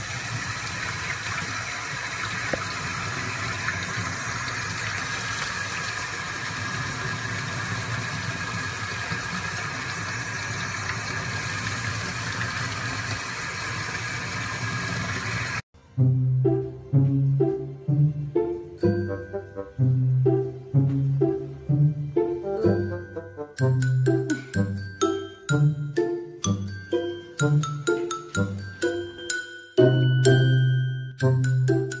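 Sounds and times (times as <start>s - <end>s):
water running from faucet: 0.0s - 15.6s.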